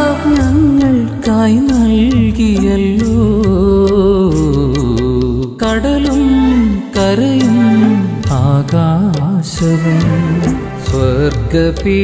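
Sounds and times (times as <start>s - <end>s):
instrumental backing with bass: 0.0s - 12.0s
man singing devotional song: 0.0s - 12.0s.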